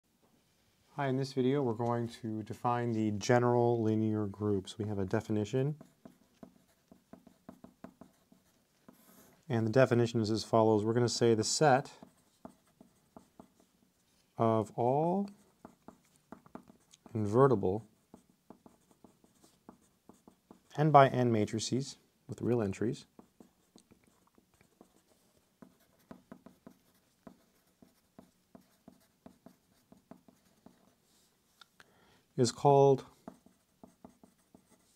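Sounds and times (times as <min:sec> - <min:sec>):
pencil scratching on paper: 0:05.2 - 0:09.5, 0:11.8 - 0:13.8, 0:15.3 - 0:20.9, 0:23.0 - 0:31.3, 0:33.0 - 0:34.9.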